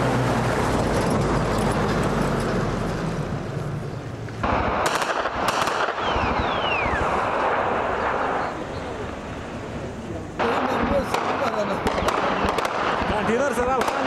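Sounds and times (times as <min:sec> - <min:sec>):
gunshots: 0:04.4 - 0:08.6, 0:10.4 - 0:14.0
short falling whistles: 0:06.0 - 0:07.1.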